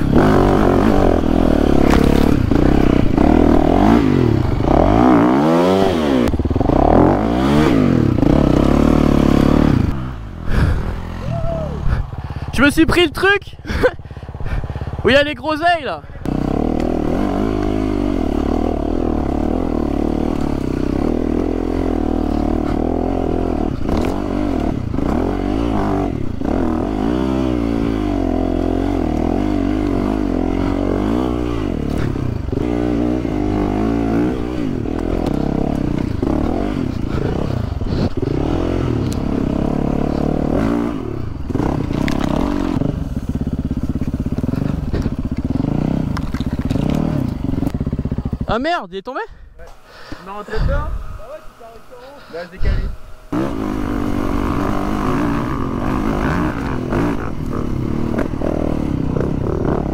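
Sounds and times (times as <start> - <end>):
motorcycle engine revving: 0.0 - 48.9, 49.7 - 59.9.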